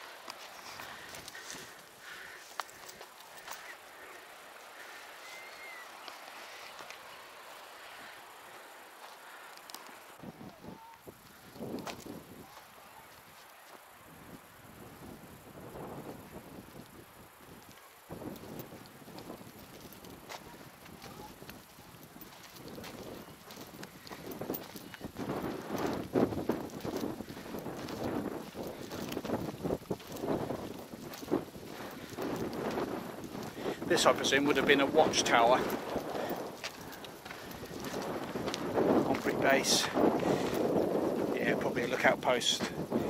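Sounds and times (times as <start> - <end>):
footsteps on gravel path: 0.0 - 14.4, 16.6 - 43.0
wind rumbling on microphone: 9.3 - 43.0.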